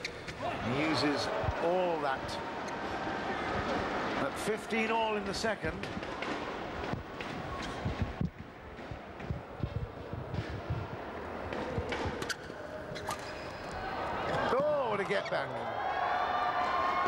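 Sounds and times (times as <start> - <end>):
racquets striking shuttlecock: 11.5 - 13.7.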